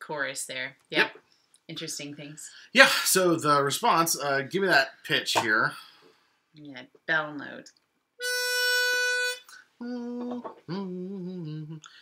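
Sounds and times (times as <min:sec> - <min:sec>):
person humming: 0:09.5 - 0:11.9.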